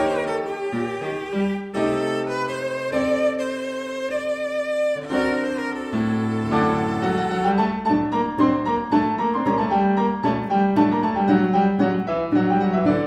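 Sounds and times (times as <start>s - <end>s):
cello and piano duo: 0.0s - 13.0s.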